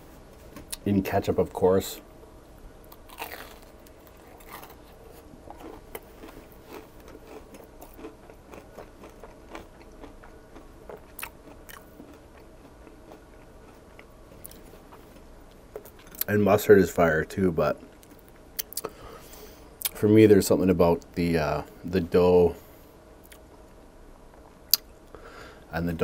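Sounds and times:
chewing crunchy food: 2.9 - 16.3.

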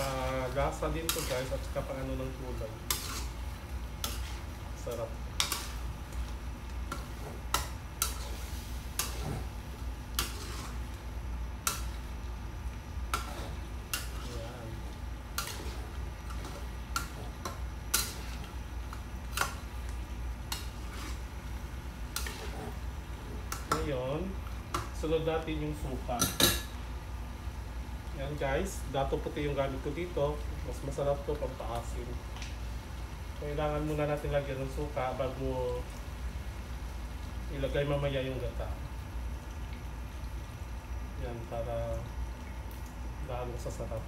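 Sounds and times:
metal spatula scraping a wok: 1.0 - 1.6, 2.8 - 3.4, 4.0 - 4.5, 6.9 - 9.5, 10.2 - 10.8, 20.5 - 21.4, 22.2 - 22.8.

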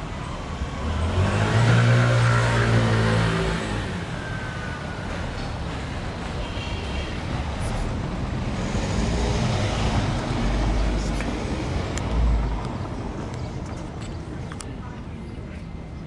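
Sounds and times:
car passing: 0.0 - 6.0.

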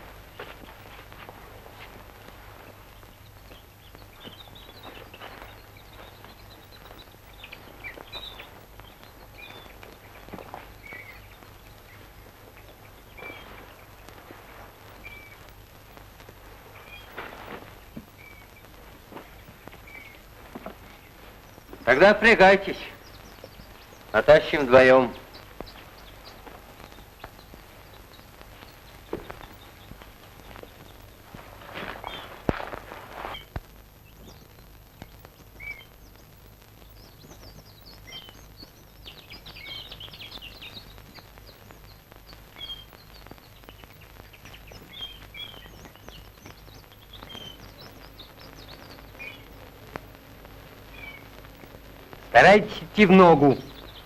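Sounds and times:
birds chirping: 0.0 - 54.0
film soundtrack hum and hiss: 0.0 - 54.0.

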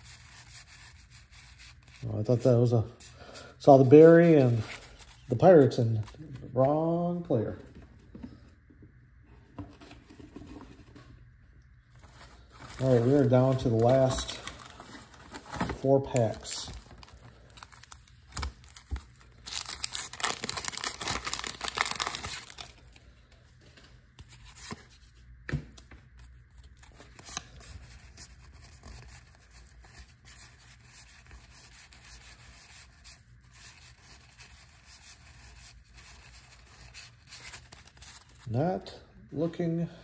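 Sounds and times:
cards rustling and clicking: 12.0 - 23.0
wax paper wrapper tearing: 12.7 - 14.8, 15.8 - 22.8.

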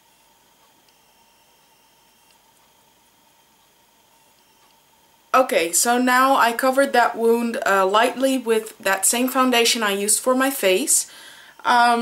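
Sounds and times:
thin steady tone: 0.0 - 2.4.

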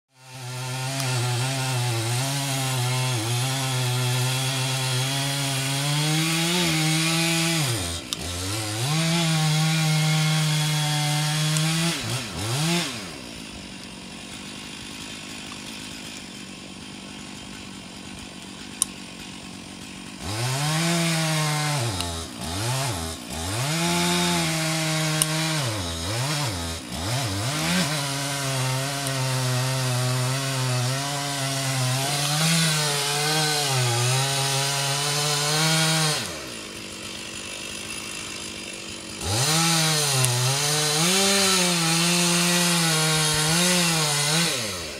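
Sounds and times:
chainsaw cutting a tree trunk: 0.1 - 44.9.

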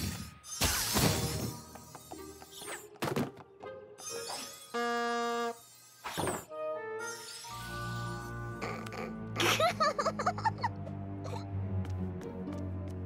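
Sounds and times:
background music: 0.0 - 5.5, 6.2 - 13.0
bulb horn honk: 4.7 - 5.6.

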